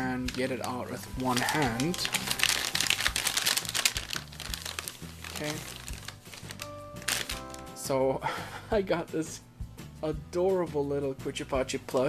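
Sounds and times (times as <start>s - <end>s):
paper bag crinkling: 0.0s - 7.7s.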